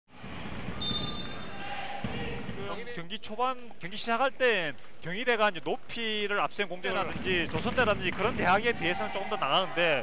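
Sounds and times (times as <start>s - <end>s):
basketball dribbled on hardwood: 6.9s - 8.5s.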